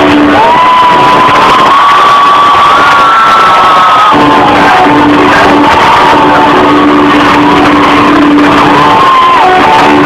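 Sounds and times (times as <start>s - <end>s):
distorted live rock music: 0.0s - 10.0s.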